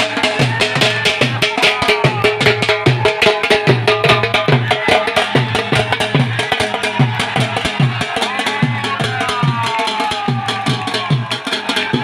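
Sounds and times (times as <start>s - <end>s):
dhol drum beat: 0.0s - 12.0s.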